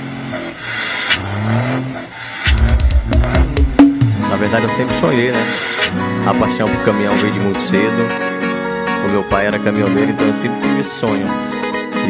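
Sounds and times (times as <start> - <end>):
engine revving up: 0.0 - 6.4.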